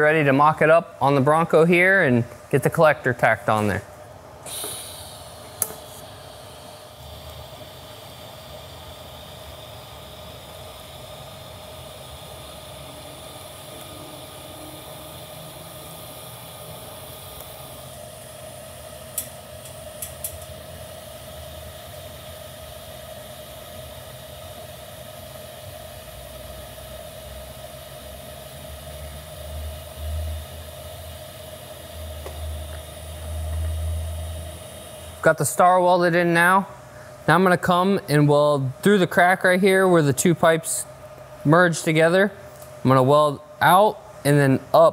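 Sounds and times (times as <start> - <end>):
welding arc hiss with buzzing: 0.0 - 44.9.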